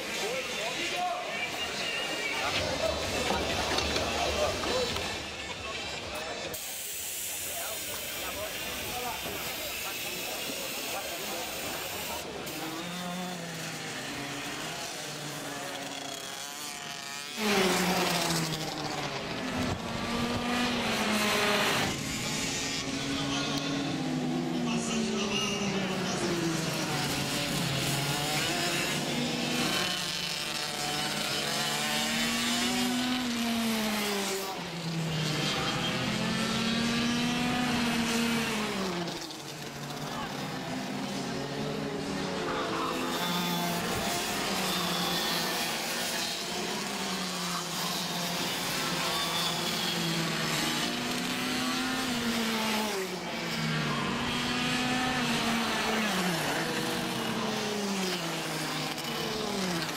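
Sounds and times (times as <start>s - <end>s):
go-kart engines revving: 0.0s - 59.9s.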